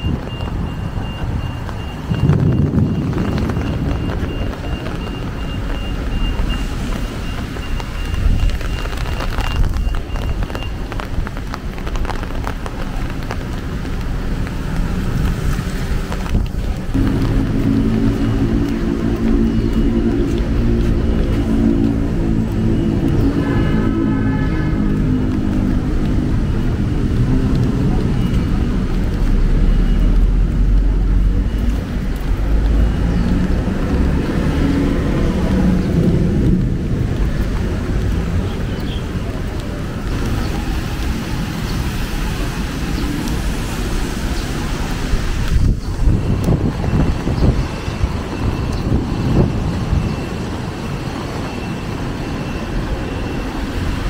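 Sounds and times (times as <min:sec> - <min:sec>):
reversing beeper: 0:00.0 - 0:10.9, 0:16.9 - 0:36.3, 0:45.7 - 0:54.0
cars passing on wet road: 0:00.0 - 0:54.0
engine humming low: 0:12.5 - 0:54.0.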